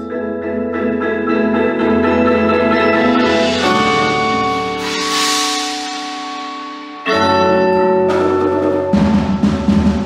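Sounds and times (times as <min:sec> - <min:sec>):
marimbas and vibraphones chord: 0:00.0 - 0:10.0
loud deep chord: 0:01.2 - 0:10.0
crash cymbal wash: 0:03.0 - 0:07.2.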